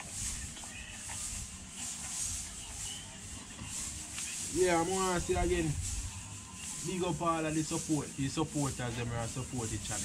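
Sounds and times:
high hiss: 0:00.0 - 0:10.0.

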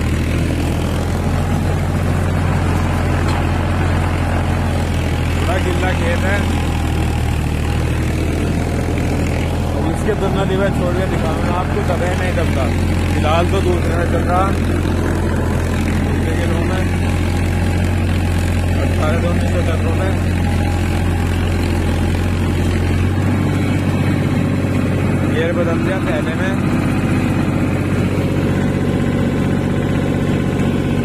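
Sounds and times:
tractor diesel engine under load: 0:00.0 - 0:31.0.

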